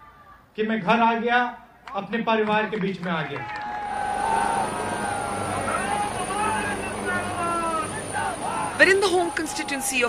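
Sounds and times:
crowd calling out: 3.5 - 10.0
helicopter whine: 3.7 - 10.0.

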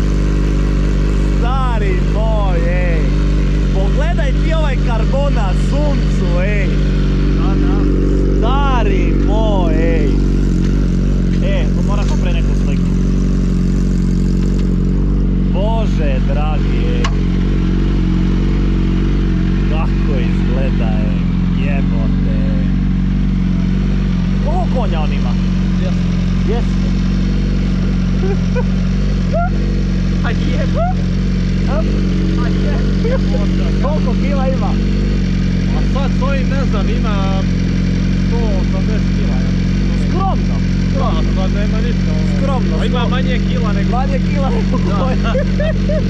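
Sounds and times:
motorcycle engine idling: 0.0 - 46.0.

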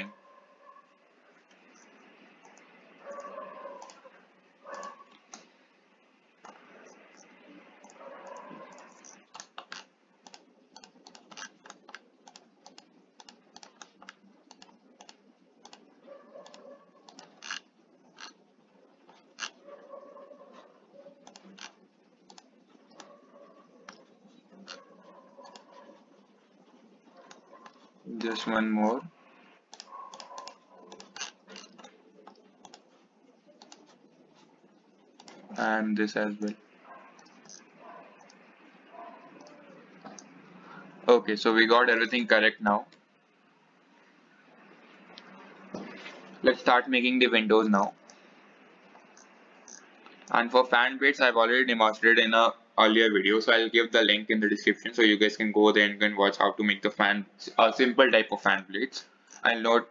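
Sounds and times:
computer mouse clicks: 1.5 - 4.0, 4.7 - 5.5, 6.4 - 18.4, 19.0 - 19.6, 21.2 - 23.2, 23.8 - 24.8, 25.4 - 25.8, 27.2 - 28.4, 29.7 - 34.5, 35.1 - 35.6, 37.2 - 38.5, 39.4 - 40.4, 48.9 - 50.4.

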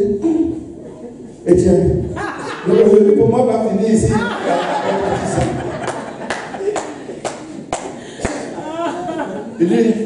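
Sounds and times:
hand claps: 5.4 - 8.6.

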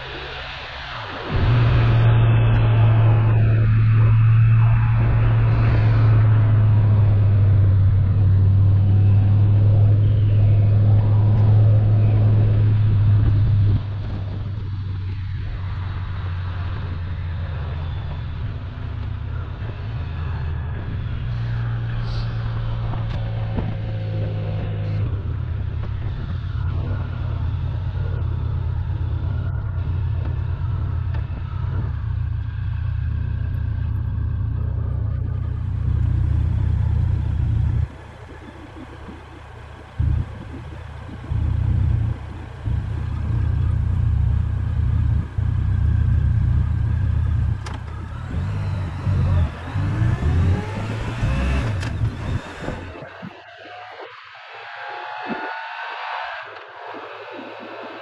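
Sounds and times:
motorcycle engine: 0.9 - 53.2
wind buffeting microphone: 1.0 - 53.4.

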